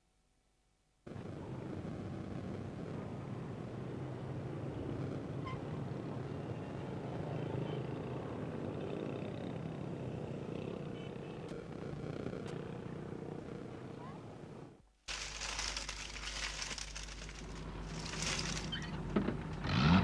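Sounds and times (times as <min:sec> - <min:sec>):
large vehicle engine rumbling: 0:15.1 - 0:20.0.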